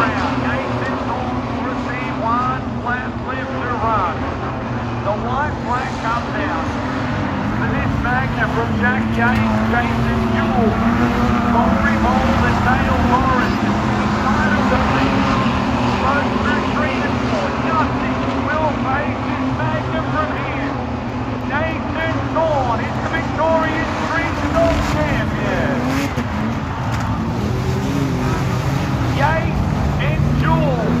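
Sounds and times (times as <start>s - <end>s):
race car engine running: 0.0s - 31.0s.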